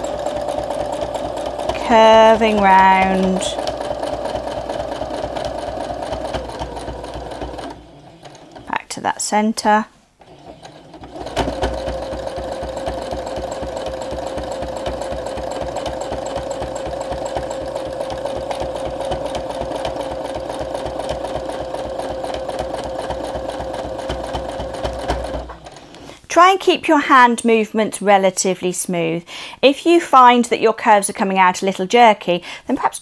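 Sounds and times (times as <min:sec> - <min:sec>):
sewing machine stitching: 0:00.0 - 0:08.8, 0:10.2 - 0:26.1.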